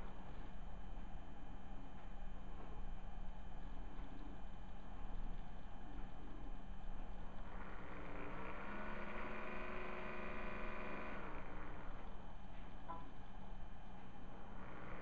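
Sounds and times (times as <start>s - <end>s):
faint pitched drone: 0.0s - 15.0s
low steady hum: 0.0s - 15.0s.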